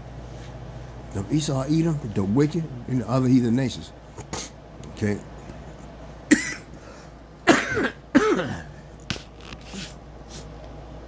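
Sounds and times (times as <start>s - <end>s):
man coughing: 6.3s - 6.8s, 7.4s - 8.9s.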